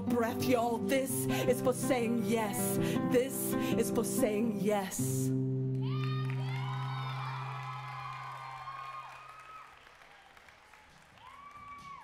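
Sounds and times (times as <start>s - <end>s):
audience applauding and whooping: 5.7s - 12.0s.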